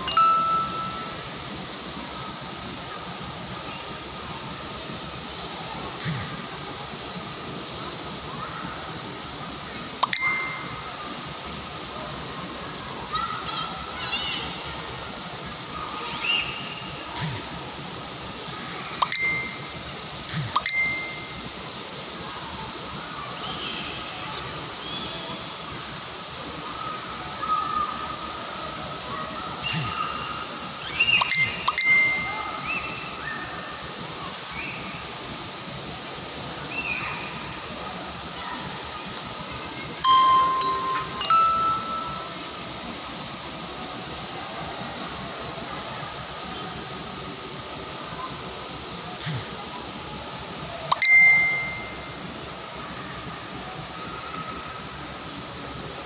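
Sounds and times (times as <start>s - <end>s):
clear ringing tones: 0.0s - 1.5s, 10.0s - 11.1s, 19.0s - 21.5s, 31.2s - 32.8s, 40.0s - 42.8s, 50.9s - 52.3s
steady outdoor hiss: 0.0s - 56.0s.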